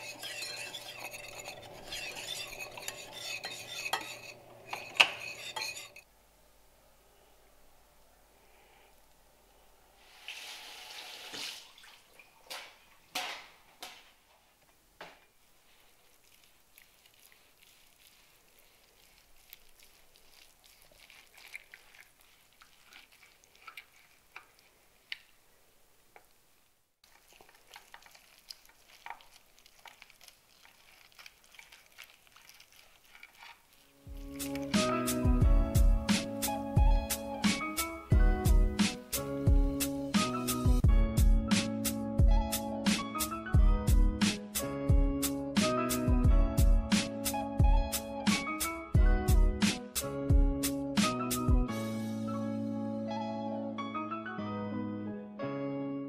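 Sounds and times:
meat crackling and sizzling: 15.6 - 25.4, 27.0 - 40.8.

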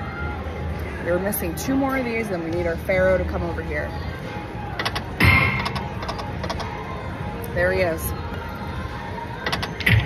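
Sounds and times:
slot machine reels clicking: 4.8 - 6.6.

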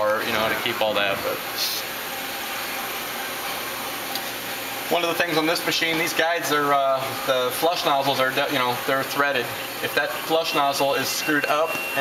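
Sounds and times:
wire edm machine hissing: 0.0 - 12.0.

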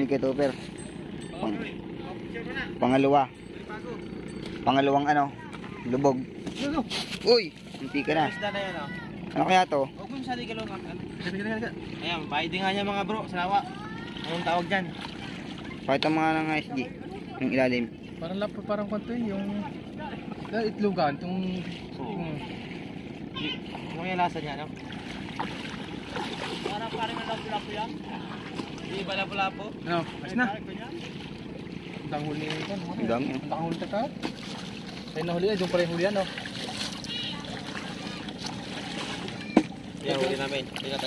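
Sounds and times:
water noise: 0.0 - 41.0
wind: 0.0 - 41.0
people talking: 26.6 - 28.2, 32.1 - 34.1, 39.4 - 41.0.

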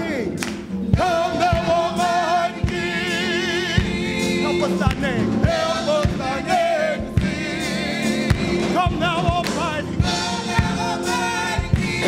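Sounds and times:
voices singing gospel: 0.0 - 12.0
drum hits: 0.4 - 12.0.

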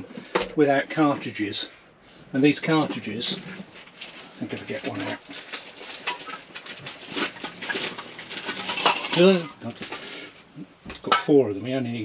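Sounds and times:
plastic wrap crinkling: 2.6 - 10.5.

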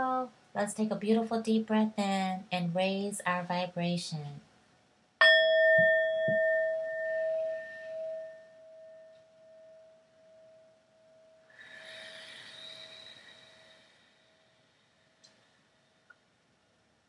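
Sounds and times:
singing bowl ringing: 5.2 - 13.2
faint hiss: 11.4 - 17.0.

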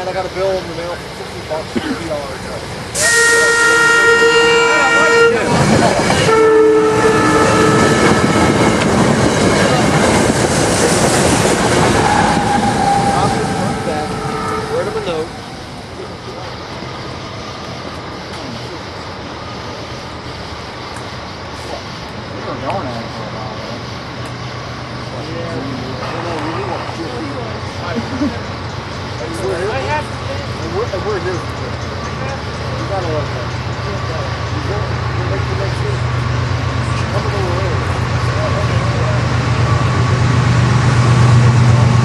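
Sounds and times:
train wheels rushing on rails: 0.0 - 42.0
train horn: 3.0 - 8.7, 12.0 - 15.3.

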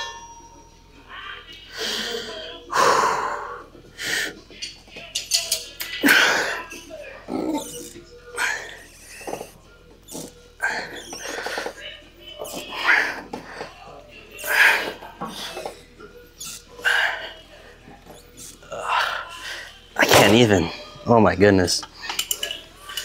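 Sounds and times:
background music: 0.0 - 23.0.

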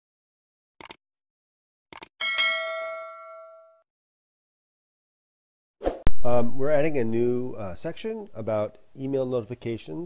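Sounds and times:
notification bell ding: 2.2 - 3.8.

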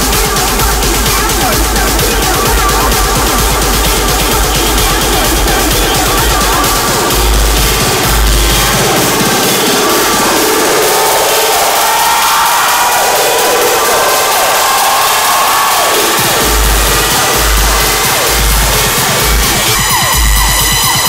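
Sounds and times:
bass kick drum: 0.0 - 10.7, 16.2 - 21.0
electronic dance music: 0.0 - 21.0
synth lines: 0.0 - 21.0.

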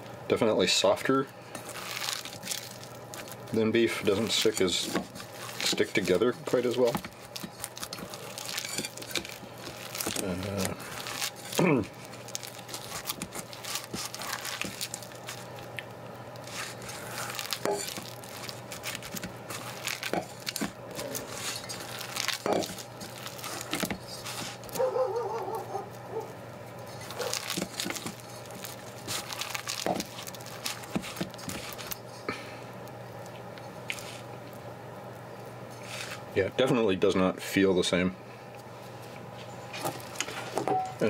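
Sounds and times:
crackles and squelches: 1.0 - 36.4, 38.5 - 40.6.

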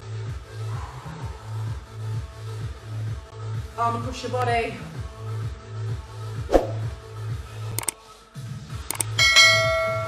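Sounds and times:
sharp clicks: 7.8 - 8.0, 8.9 - 9.2
notification bell chime: 9.2 - 10.0.

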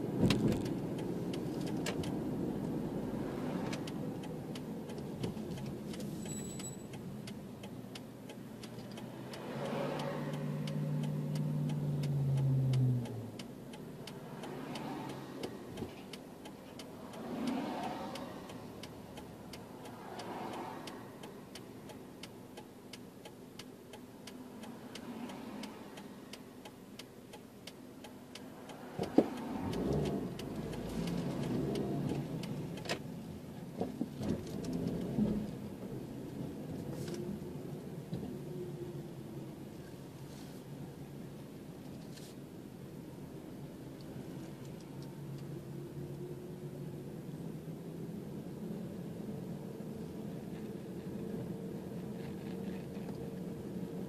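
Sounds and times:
car engine and road hum: 0.0 - 54.0
light steady ticking: 0.0 - 54.0.

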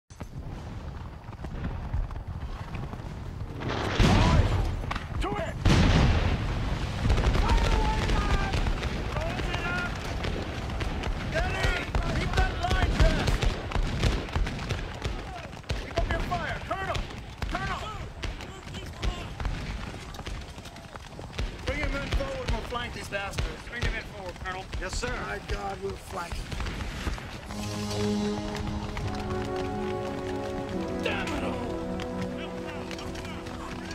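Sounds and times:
crackling musket fire: 0.1 - 33.9
men shouting: 30.8 - 33.9.

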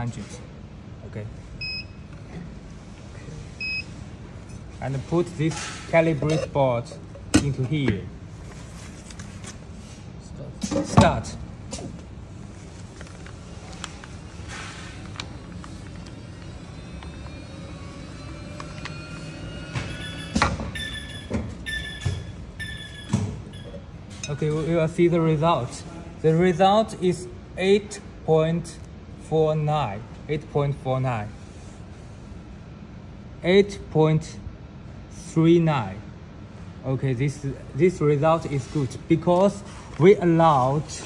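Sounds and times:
machine running noise: 11.6 - 24.8
short pitched machine tones: 16.2 - 23.9.

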